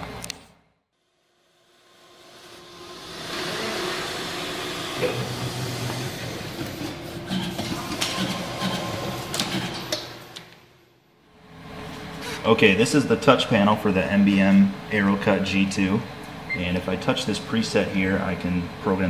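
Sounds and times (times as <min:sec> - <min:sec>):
paper finisher machine whirring: 0:01.9 - 0:10.7.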